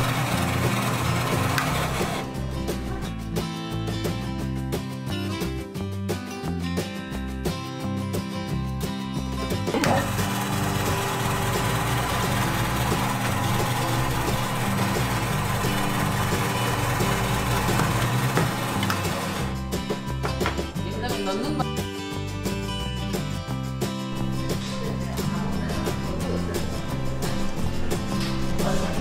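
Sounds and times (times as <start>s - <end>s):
ice-shaving machine grinding ice: 0.0s - 2.3s, 9.8s - 19.6s
background music: 0.0s - 29.0s.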